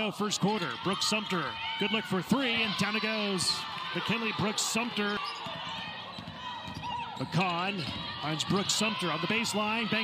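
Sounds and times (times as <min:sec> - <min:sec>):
arena noise: 0:00.0 - 0:10.0.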